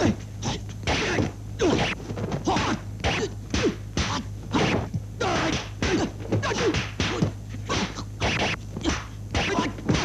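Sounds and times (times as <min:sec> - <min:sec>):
steady low hum: 0:00.0 - 0:10.0
punch and block hits: 0:00.9 - 0:10.0.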